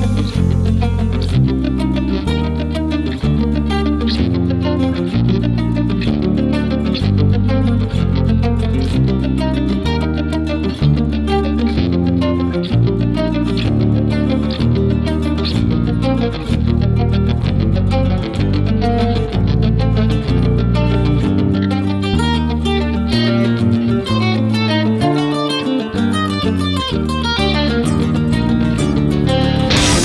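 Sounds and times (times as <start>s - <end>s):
electric guitar picked notes: 0.0s - 30.0s
low sustained bass notes: 0.0s - 30.0s.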